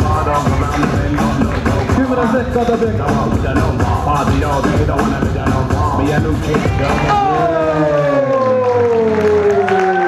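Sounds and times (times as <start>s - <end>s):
music: 0.0s - 8.0s.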